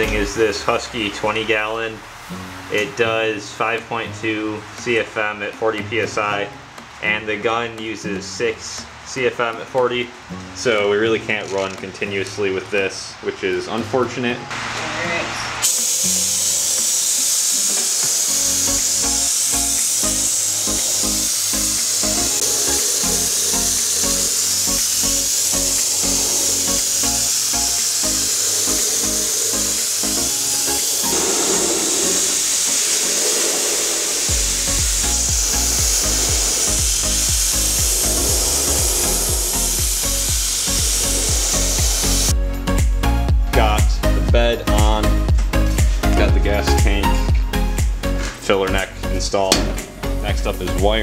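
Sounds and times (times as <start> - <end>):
background music with steady beat: 0.0 - 51.0
paint spray gun hissing: 15.6 - 42.4, 49.5 - 50.8.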